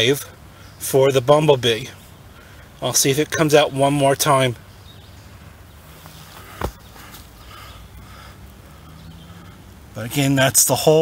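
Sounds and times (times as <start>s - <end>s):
faint low hum: 0.0s - 10.8s
soft bump: 6.0s - 7.2s.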